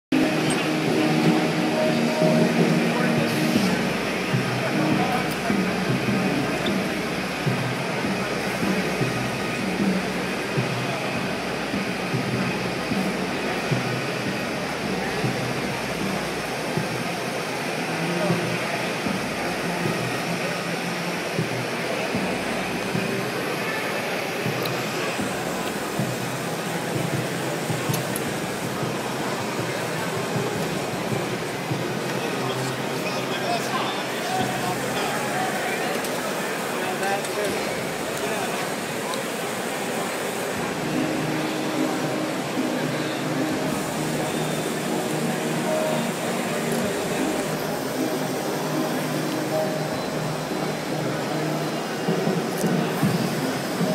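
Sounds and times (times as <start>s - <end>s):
chatter of many voices: 0.0s - 53.9s
background music: 0.1s - 53.9s.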